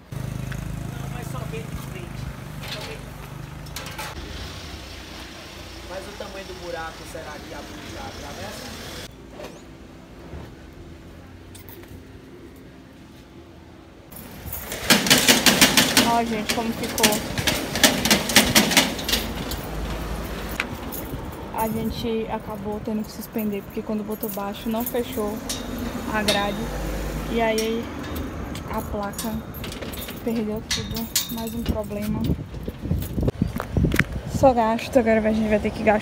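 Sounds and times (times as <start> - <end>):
vehicle engine rumbling: 0.0 - 36.0.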